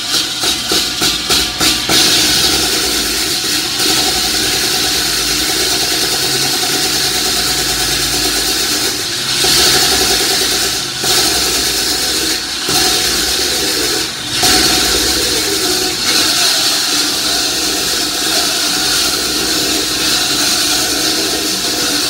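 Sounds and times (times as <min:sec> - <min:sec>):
concrete saw cutting: 0:00.0 - 0:22.0
wet vacuum sucking: 0:00.0 - 0:22.0.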